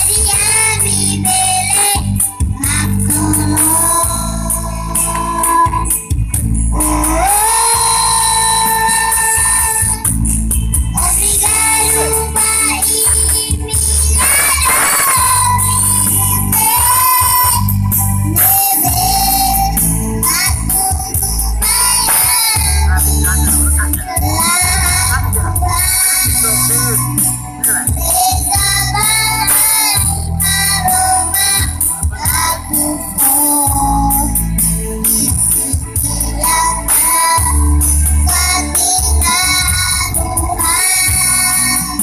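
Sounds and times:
backing track music: 0:00.0 - 0:42.0
young voice singing: 0:18.4 - 0:27.0.

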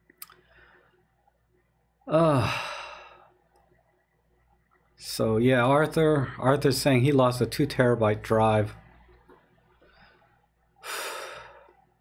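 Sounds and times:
man sighing: 0:02.0 - 0:03.3.

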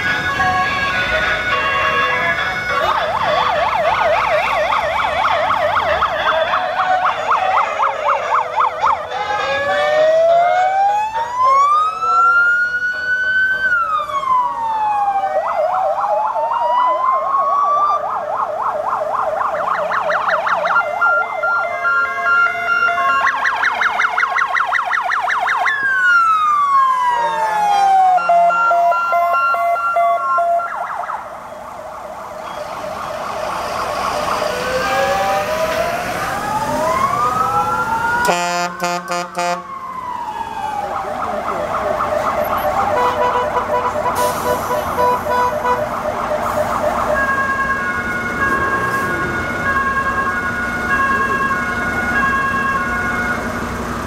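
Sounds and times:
emergency vehicle sirens: 0:00.0 - 0:54.0.

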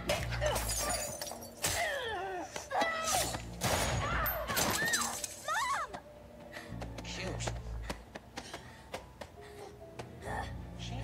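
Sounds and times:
glass shattering: 0:00.5 - 0:01.9, 0:03.1 - 0:05.6.

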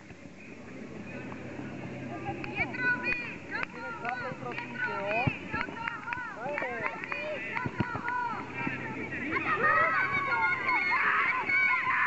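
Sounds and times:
high voices shouting: 0:05.7 - 0:12.0.

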